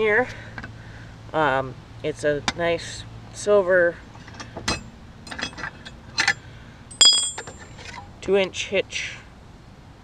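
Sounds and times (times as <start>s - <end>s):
sharp metal clink: 6.9s - 7.6s
metal clicking and knocking: 7.0s - 7.6s.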